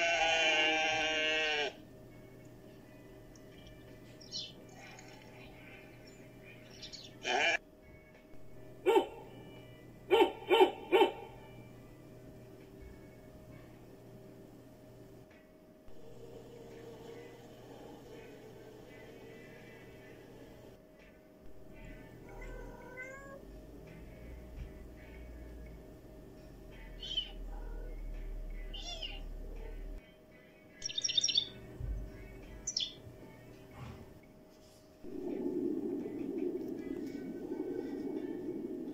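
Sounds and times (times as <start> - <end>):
sheep bleating: 0.0 - 1.8, 7.2 - 7.6
cat meowing: 22.3 - 23.4, 28.8 - 29.2.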